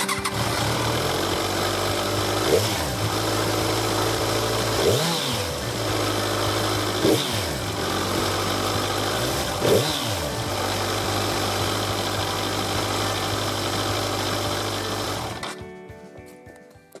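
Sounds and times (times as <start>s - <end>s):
motorcycle engine idling: 0.0s - 15.6s
background music: 0.0s - 17.0s.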